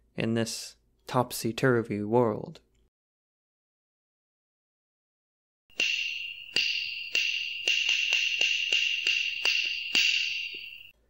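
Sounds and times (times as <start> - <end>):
sharp strikes: 5.7 - 10.9
high-pitched ringing buzz: 5.7 - 11.0.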